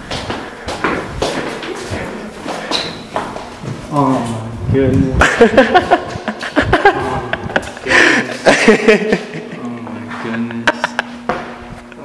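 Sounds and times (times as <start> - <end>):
footsteps on concrete: 0.0 - 3.9.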